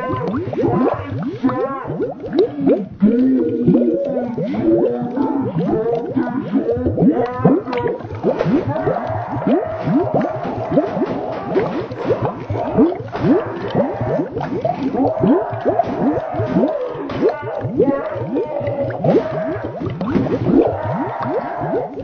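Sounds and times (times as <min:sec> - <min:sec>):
warped slowed boy screaming: 0:00.0 - 0:08.0, 0:08.6 - 0:19.8, 0:20.5 - 0:22.0.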